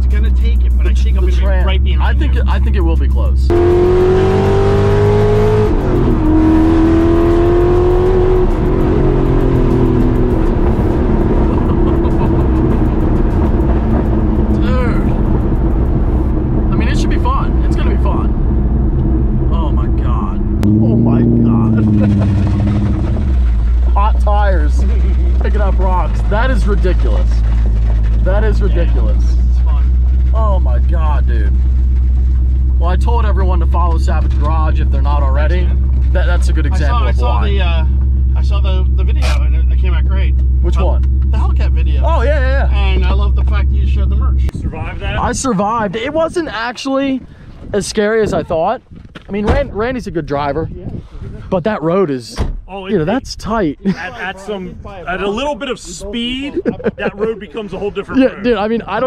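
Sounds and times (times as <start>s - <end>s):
people talking: 0.0s - 3.5s, 11.4s - 13.0s, 14.4s - 15.3s, 16.7s - 18.3s, 19.5s - 22.7s, 23.8s - 27.4s, 28.2s - 31.6s, 32.8s - 50.9s, 51.5s - 59.0s
supercharged car engine revving: 0.0s - 44.5s.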